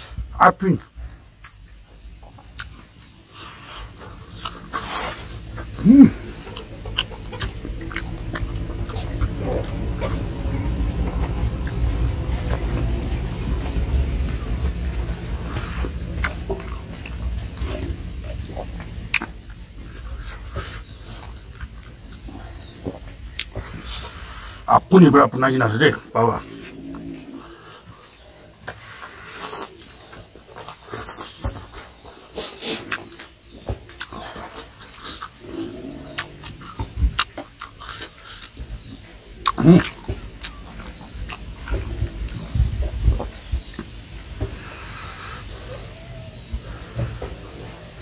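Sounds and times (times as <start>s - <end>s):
chewing and mouth smacking: 1.4s - 24.7s, 26.4s - 48.0s
sharp wet clicks: 2.4s - 3.2s, 32.6s - 42.5s
short grunt: 5.8s - 6.3s.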